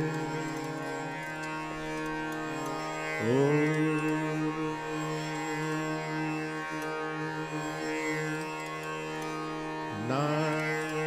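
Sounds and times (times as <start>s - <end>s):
man singing long held note: 0.0s - 1.0s, 3.2s - 8.4s, 9.9s - 11.0s
tanpura drone: 0.0s - 11.0s.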